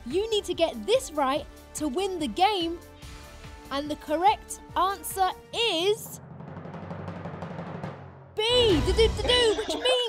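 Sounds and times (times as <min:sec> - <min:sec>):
timpani drum roll: 0:06.2 - 0:09.2.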